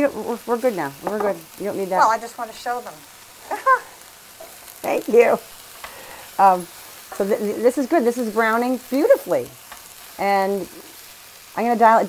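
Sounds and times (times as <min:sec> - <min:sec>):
onions sizzling in skillet: 0:00.0 - 0:12.0.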